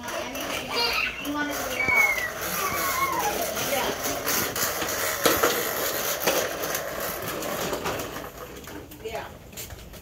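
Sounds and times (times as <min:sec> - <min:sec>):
plastic toy mower rattling: 0:00.0 - 0:09.3.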